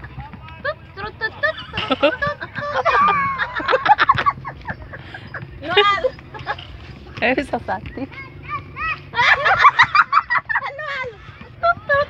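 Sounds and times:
voices outdoors: 0.0 - 12.0.

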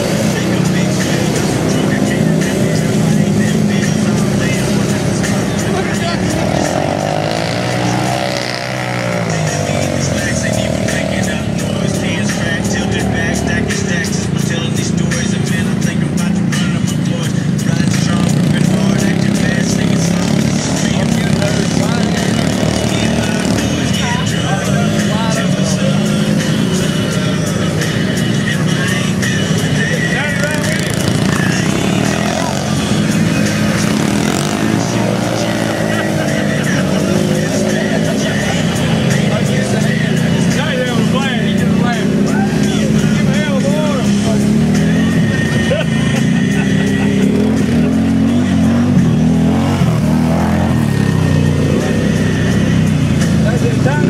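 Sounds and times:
engine churning through mud: 0.0 - 54.0
voices: 0.0 - 54.0.

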